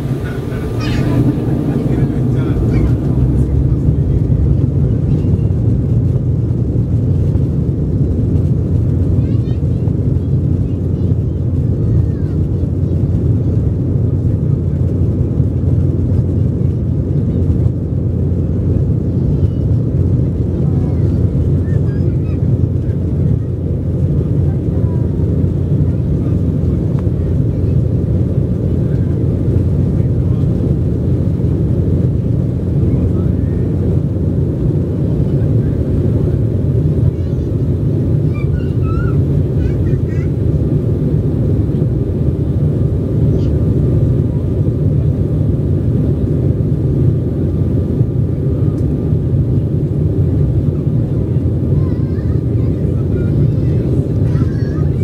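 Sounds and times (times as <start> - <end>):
jet engines roaring: 0.0 - 55.0.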